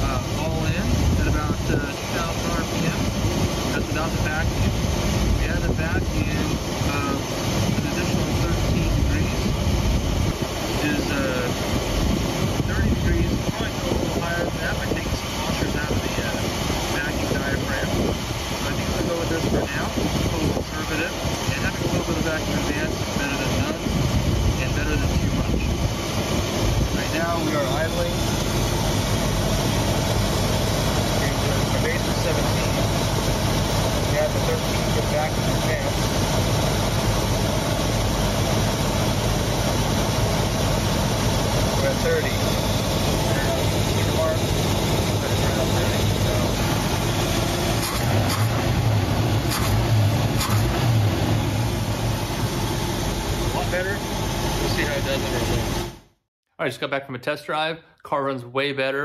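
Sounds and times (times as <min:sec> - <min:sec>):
car engine idling: 0:00.0 - 0:56.1.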